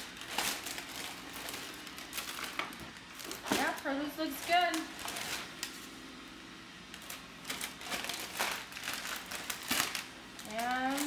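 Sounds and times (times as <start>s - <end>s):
plastic bag rustling and crinkling: 0.0s - 6.1s, 6.9s - 11.0s.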